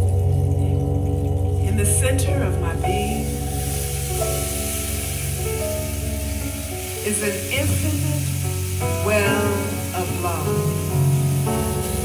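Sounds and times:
rainstick hissing: 0:02.2 - 0:12.0.

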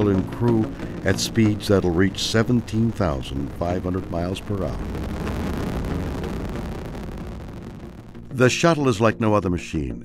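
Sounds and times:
rocket engines rushing roar: 0:00.0 - 0:08.3.

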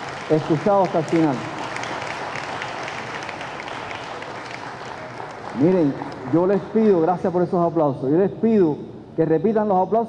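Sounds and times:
audience applauding: 0:00.0 - 0:07.1.

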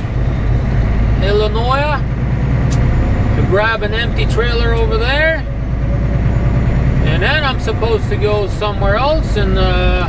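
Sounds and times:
truck engine and road noise: 0:00.0 - 0:10.0.

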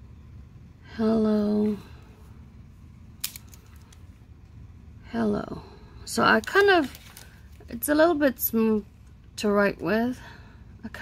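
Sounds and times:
paper rustling: 0:06.4 - 0:07.6.

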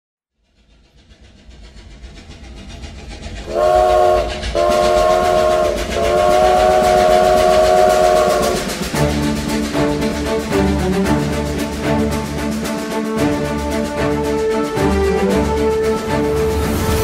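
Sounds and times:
low train rumble: 0:00.3 - 0:17.0
train horn blasts: 0:03.5 - 0:08.7.

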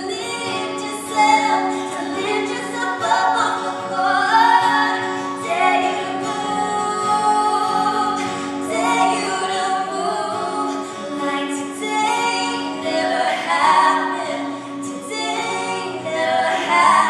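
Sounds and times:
strummed acoustic guitar: 0:00.0 - 0:17.0
women singing in harmony: 0:00.0 - 0:17.0.

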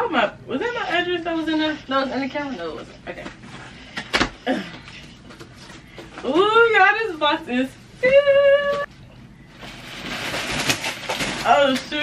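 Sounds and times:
plastic packages rustling: 0:09.5 - 0:12.0.

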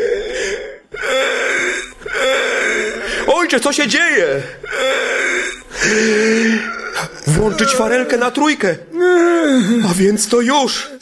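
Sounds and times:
man groaning in pain: 0:00.0 - 0:03.3, 0:04.5 - 0:08.2, 0:08.9 - 0:09.9.

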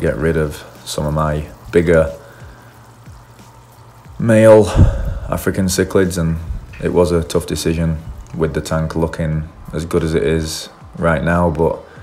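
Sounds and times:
faint fizzing of air bubbles: 0:00.0 - 0:12.0.

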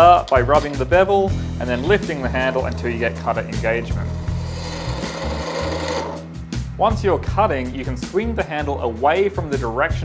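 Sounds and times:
chisel cutting wood on lathe: 0:01.6 - 0:06.3.

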